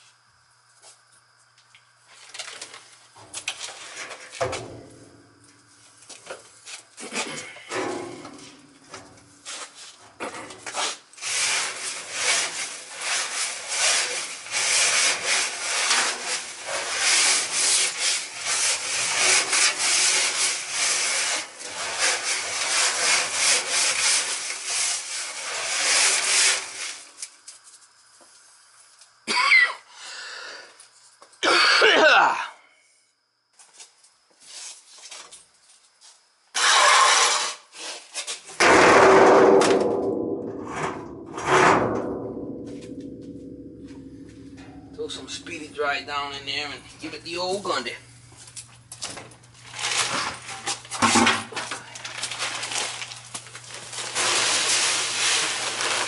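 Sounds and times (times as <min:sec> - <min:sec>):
granules scraped over steel floor: 0:09.4 - 0:27.2, 0:36.6 - 0:46.7, 0:49.6 - 0:56.0.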